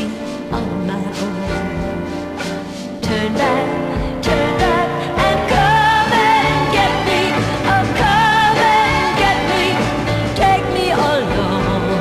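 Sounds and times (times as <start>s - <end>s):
pop-soul record playing: 0.0s - 12.0s.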